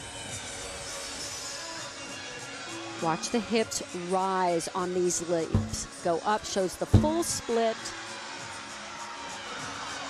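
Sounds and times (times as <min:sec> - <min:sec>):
crowd hubbub in arena: 0:02.0 - 0:10.0
faint music: 0:03.0 - 0:07.9.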